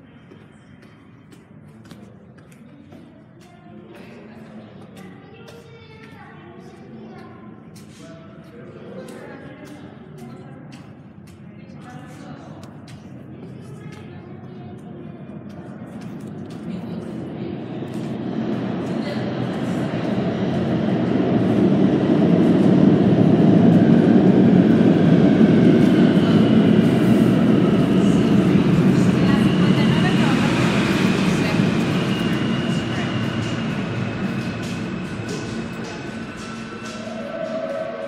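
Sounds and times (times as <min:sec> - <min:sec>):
subway train rumble: 0:00.0 - 0:38.0.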